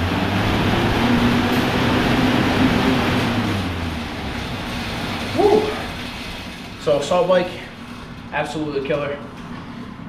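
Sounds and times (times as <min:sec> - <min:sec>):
low drone: 0:00.0 - 0:06.4
fan flywheel whooshing: 0:00.0 - 0:10.0.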